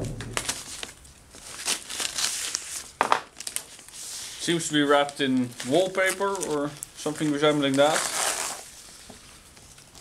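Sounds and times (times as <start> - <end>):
heavy paper tearing and crumpling: 0.3 - 8.8.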